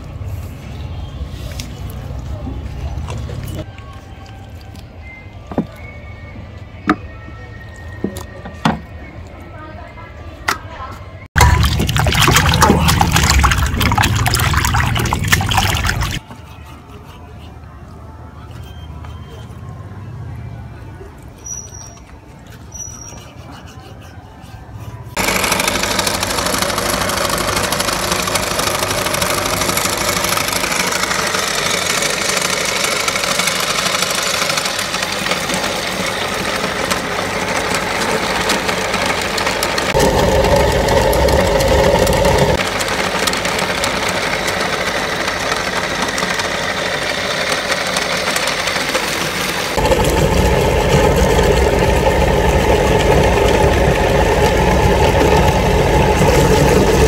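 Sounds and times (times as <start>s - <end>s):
electric meat grinder running: 25.2s - 57.0s.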